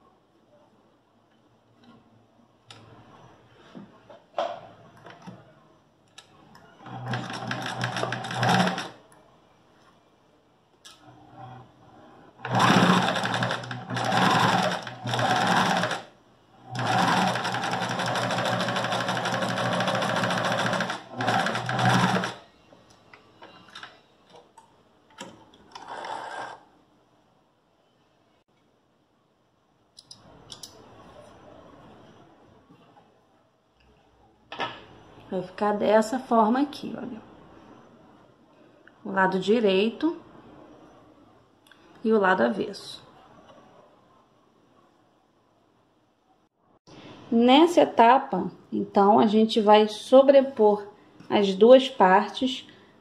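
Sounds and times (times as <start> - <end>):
sewing machine stitching: 6.8 - 9.0, 12.3 - 22.4, 25.7 - 26.6.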